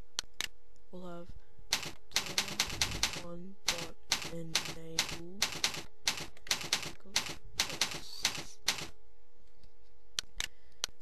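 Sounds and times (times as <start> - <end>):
faint steady hum: 0.0 - 11.0
computer keyboard typing: 1.7 - 9.0.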